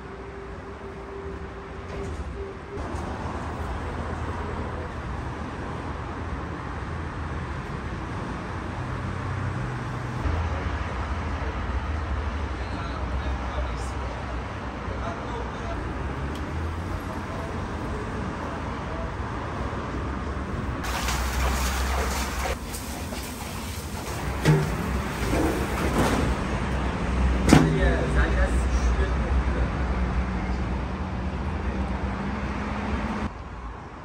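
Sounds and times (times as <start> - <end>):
metal basin clanking on oven rim: 24.3 - 26.1.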